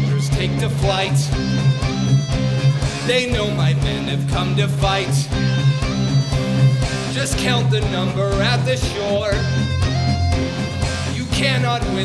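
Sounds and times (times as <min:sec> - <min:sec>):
steady drum beat: 0:00.4 - 0:12.0
strummed guitar: 0:00.4 - 0:12.0
sustained low notes: 0:07.8 - 0:11.4.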